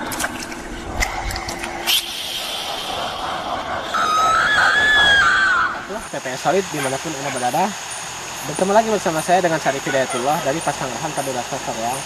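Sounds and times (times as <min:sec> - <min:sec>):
high wavering drawn-out tone: 0:00.0 - 0:12.0
noisy sound bed: 0:00.0 - 0:12.0.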